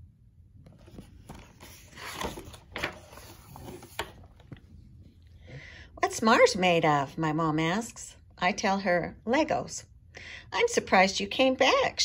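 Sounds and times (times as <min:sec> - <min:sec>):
paper page rustling: 0:00.7 - 0:04.8.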